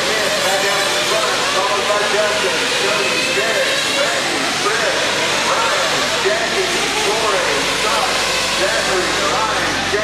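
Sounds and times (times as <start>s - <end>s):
small nitro engines whining: 0.0s - 10.0s.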